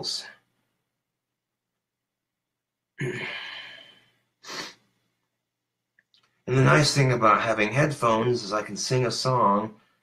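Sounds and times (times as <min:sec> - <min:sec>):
man sighing: 0:03.0 - 0:04.8
short breath in: 0:03.2 - 0:04.9.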